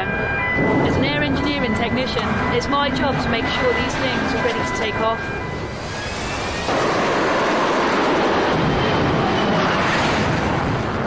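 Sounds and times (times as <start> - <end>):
jet engine at full power: 5.5 - 11.0.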